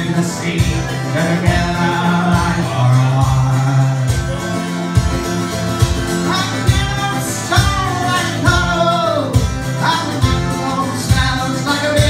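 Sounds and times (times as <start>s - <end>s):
man singing: 0.0s - 5.2s, 6.1s - 12.0s
strummed acoustic guitar: 0.0s - 12.0s.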